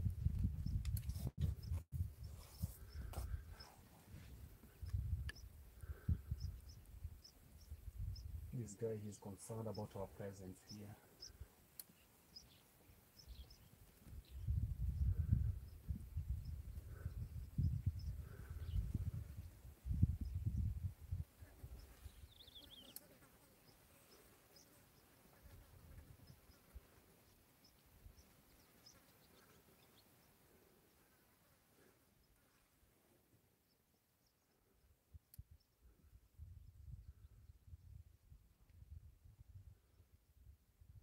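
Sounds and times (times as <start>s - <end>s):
wind buffeting microphone: 0.0s - 3.6s, 4.2s - 8.6s, 14.1s - 22.4s
faint bird chirps: 4.6s - 20.7s, 21.4s - 32.8s.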